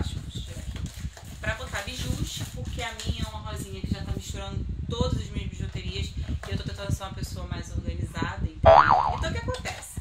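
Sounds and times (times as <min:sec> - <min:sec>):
woman's voice: 0:00.0 - 0:10.0
springy boing: 0:08.7 - 0:09.2.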